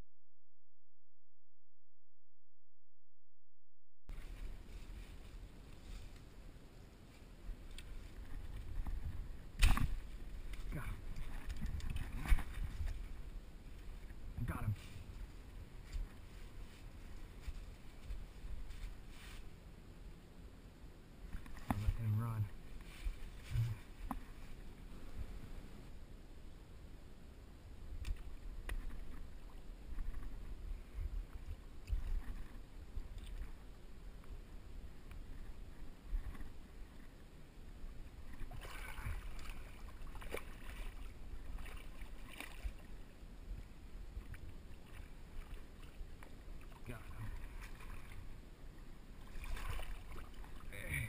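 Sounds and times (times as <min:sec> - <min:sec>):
water sloshing: 0:07.8 - 0:14.2, 0:38.2 - 0:50.8.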